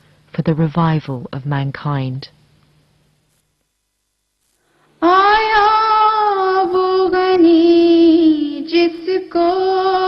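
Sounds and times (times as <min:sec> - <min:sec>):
person singing unaccompanied: 0:05.0 - 0:10.0.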